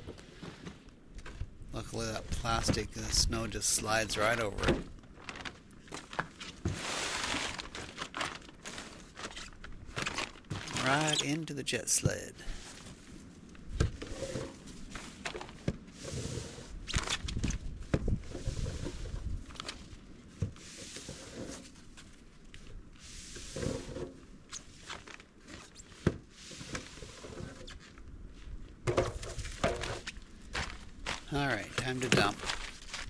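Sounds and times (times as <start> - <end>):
shovel scraping wet snow: 6.7 - 7.7.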